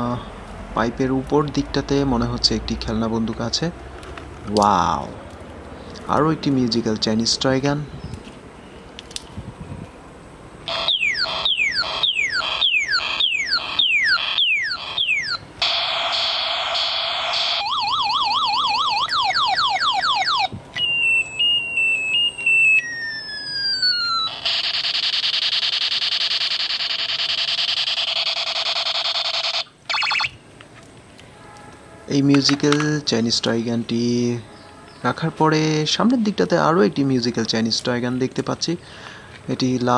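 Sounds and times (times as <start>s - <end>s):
buzzing tone: 10.6s - 17.8s, 20.3s - 30.4s
warbling siren: 10.6s - 30.4s
toy laser zaps: 10.7s - 20.3s, 21.8s - 30.4s.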